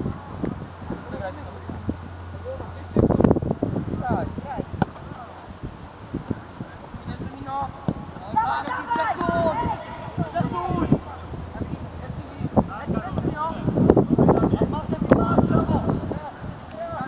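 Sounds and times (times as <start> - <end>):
distant voices shouting: 7.6 - 17.0.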